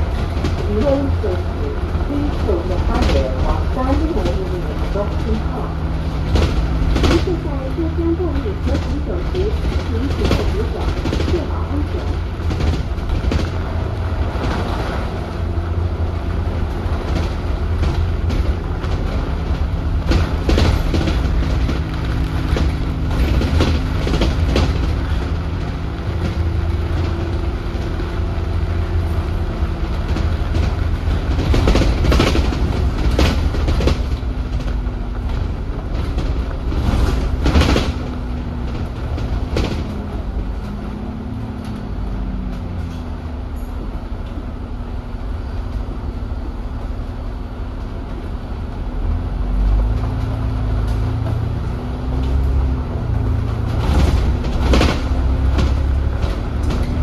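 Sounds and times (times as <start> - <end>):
bus body rattles and knocks: 0.0 - 57.0
bus engine drone with whine: 0.0 - 57.0.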